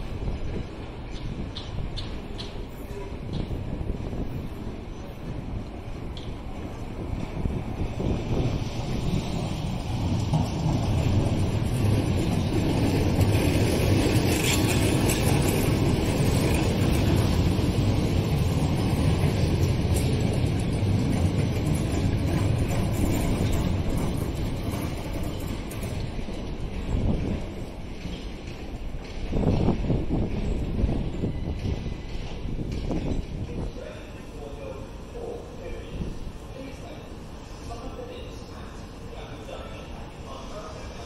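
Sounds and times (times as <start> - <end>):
wind on microphone: 0.0 - 28.1, 28.8 - 34.1
train wheels rumbling on rail: 0.0 - 41.0.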